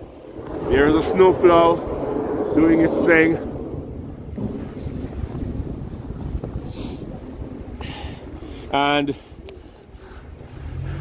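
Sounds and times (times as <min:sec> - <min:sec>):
wind gusting on microphone: 0:00.0 - 0:11.0.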